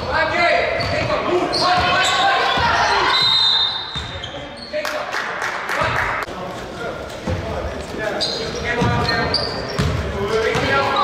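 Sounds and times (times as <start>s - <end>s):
players' voices: 0.0s - 11.0s
shoe squeaks: 0.7s - 4.9s, 7.9s - 11.0s.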